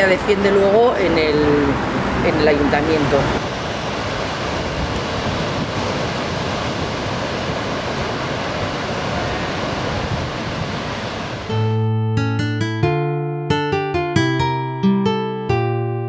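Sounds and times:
water rushing: 0.0 - 11.6.

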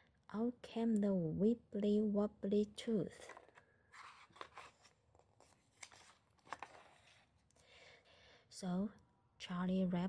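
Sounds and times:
paper page turning: 3.2 - 7.4.

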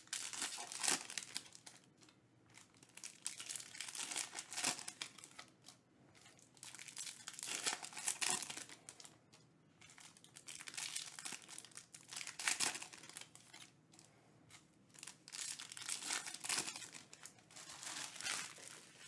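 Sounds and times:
foil wrapper crinkling and tearing: 0.0 - 9.1, 9.9 - 13.8, 14.9 - 19.0.

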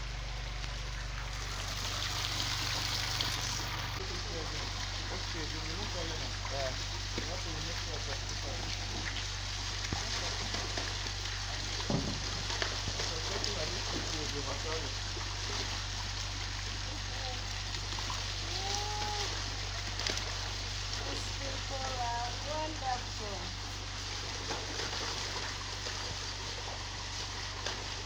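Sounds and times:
water pouring into pond: 0.0 - 28.0.

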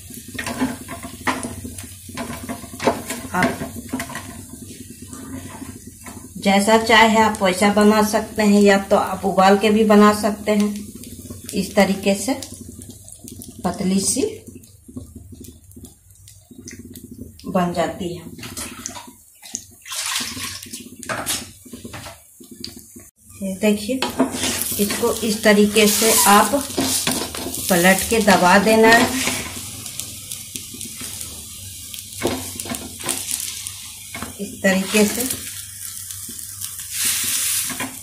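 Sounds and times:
batter sizzling in hot oil: 0.0 - 38.0
wooden spatula scraping a pan: 0.1 - 6.4, 21.0 - 22.2, 24.0 - 30.0.

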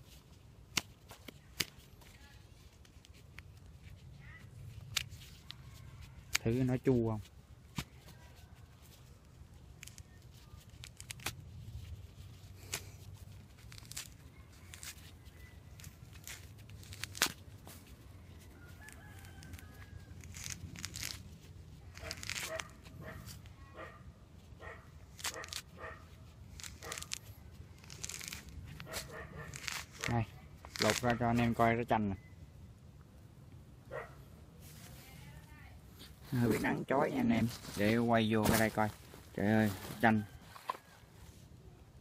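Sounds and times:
lime peel tearing crackles: 0.0 - 23.6, 24.4 - 31.8.

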